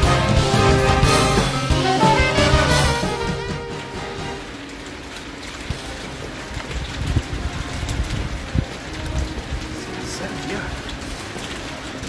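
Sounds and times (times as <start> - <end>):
faint background music: 0.0 - 12.0
wind rumbling on microphone: 5.5 - 12.0.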